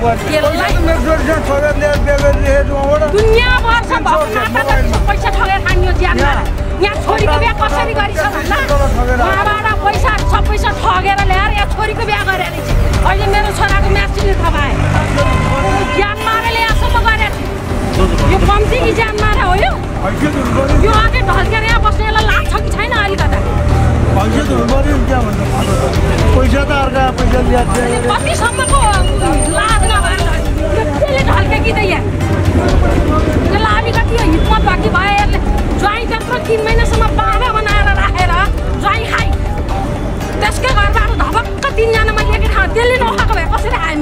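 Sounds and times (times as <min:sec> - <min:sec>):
voices arguing heatedly: 0:00.0 - 0:39.4.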